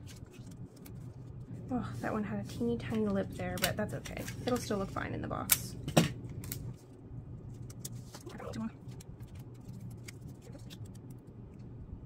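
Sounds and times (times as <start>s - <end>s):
paper envelopes rustling: 0.0s - 1.5s, 7.5s - 11.2s
low steady hum: 0.0s - 12.0s.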